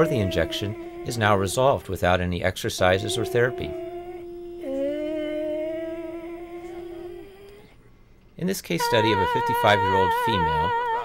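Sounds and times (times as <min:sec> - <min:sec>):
lower wavering held vowel: 0:00.0 - 0:02.2, 0:02.8 - 0:07.8, 0:08.8 - 0:11.0
woman holding sustained vowel: 0:00.0 - 0:07.8, 0:08.8 - 0:11.0.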